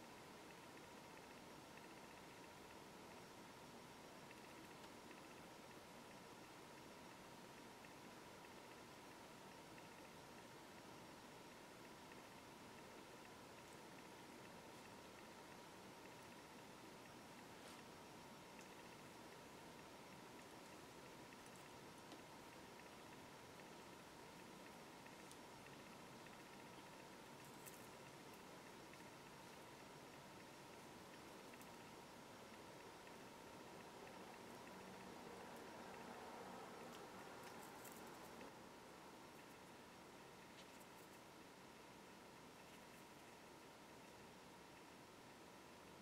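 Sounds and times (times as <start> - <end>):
faint room tone hiss: 0.0 - 46.0
faint ticks of wire and beads: 0.0 - 46.0.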